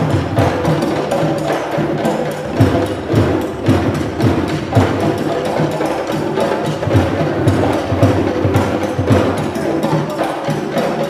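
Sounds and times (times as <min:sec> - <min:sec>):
fast hand drumming: 0:00.0 - 0:11.0.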